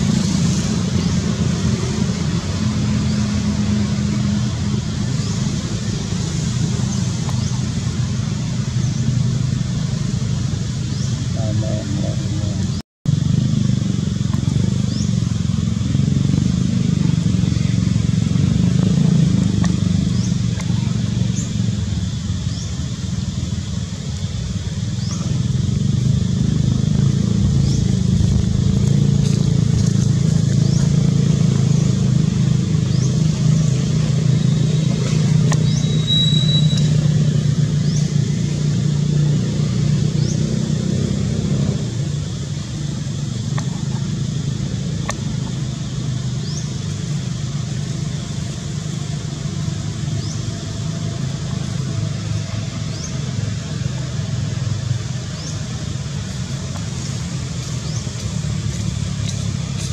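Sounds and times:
motor engine running: 0.0s - 59.9s.

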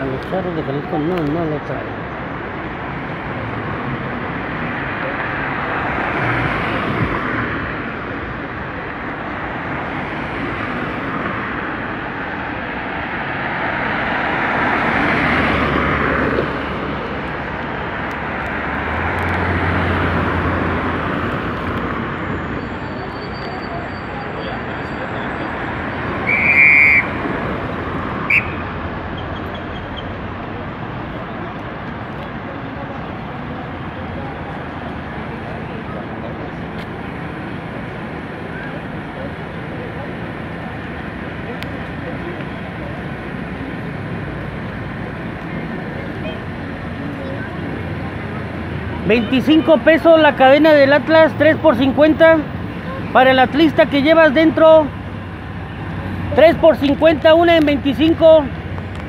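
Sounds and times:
road traffic passing: 0.0s - 59.0s
car horn beep: 26.2s - 27.2s, 28.3s - 28.7s.

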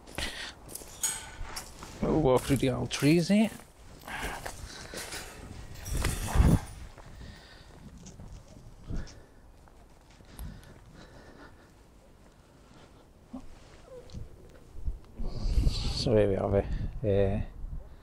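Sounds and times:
footsteps on rough ground: 0.0s - 15.0s.

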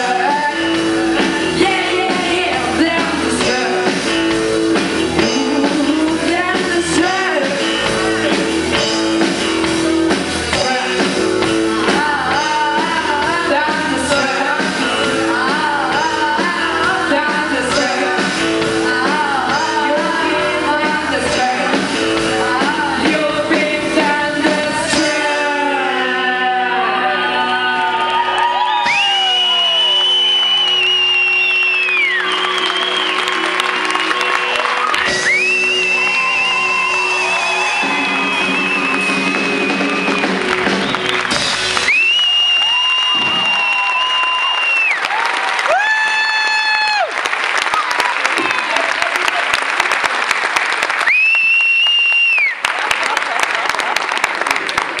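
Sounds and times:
audience applauding and cheering: 0.0s - 15.7s, 26.7s - 55.0s
high crowd whistles: 28.2s - 47.0s, 51.0s - 52.7s.

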